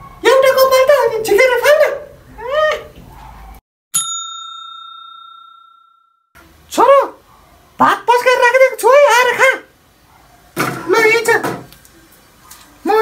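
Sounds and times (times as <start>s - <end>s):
bell ding: 4.0s - 6.3s.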